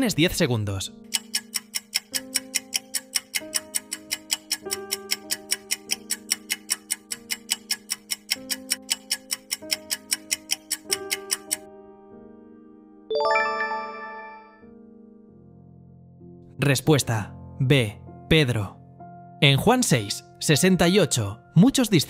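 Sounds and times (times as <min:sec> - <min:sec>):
timer ticking: 0:01.0 - 0:11.7
soft sustained music chord: 0:11.6 - 0:16.4.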